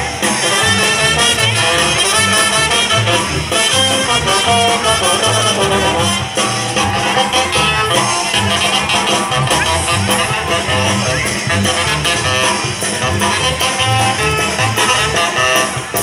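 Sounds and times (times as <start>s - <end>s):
brass band dance music: 0.0s - 16.0s.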